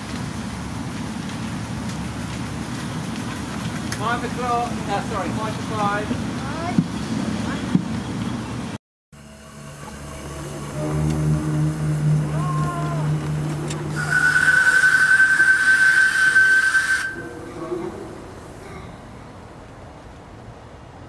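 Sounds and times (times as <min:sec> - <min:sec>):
low hum of miniature train: 0:00.0 - 0:21.0
steam locomotive whistle: 0:09.2 - 0:17.9
steam hissing: 0:09.2 - 0:19.4.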